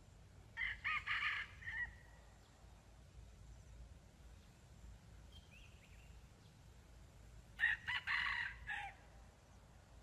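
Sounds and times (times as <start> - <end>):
rooster crowing: 7.6 - 9.0.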